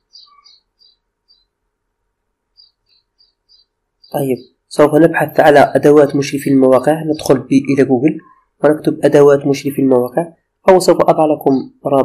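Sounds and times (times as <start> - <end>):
faint high-pitched bird chirps: 0.0 - 1.6, 2.5 - 9.2.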